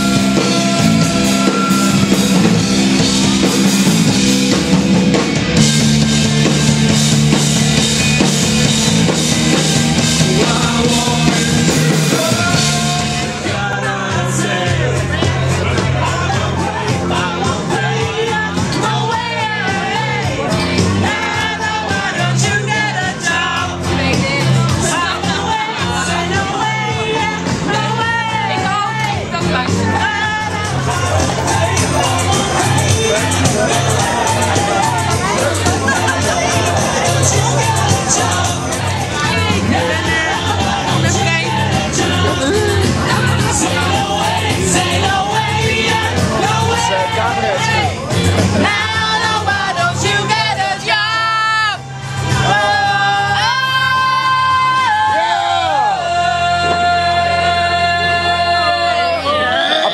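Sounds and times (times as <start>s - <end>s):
drum kit with crashing cymbals: 0.0s - 28.6s, 29.4s - 50.4s
distorted electric guitars: 0.0s - 54.8s, 55.8s - 59.9s
bass guitar: 0.0s - 59.9s
rock music: 0.0s - 59.9s
young women singing along: 10.0s - 59.9s.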